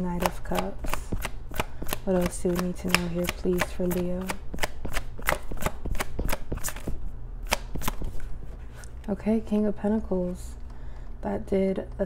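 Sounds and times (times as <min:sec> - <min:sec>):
low steady hum: 0:00.0 - 0:12.0
cards being shuffled: 0:00.2 - 0:09.1.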